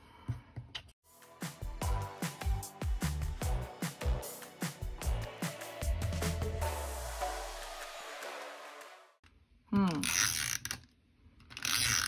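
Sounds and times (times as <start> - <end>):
background music: 1.0 - 9.2.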